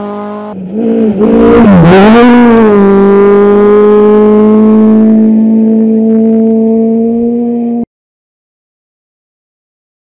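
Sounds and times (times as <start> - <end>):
rally car engine: 0.0 - 7.9.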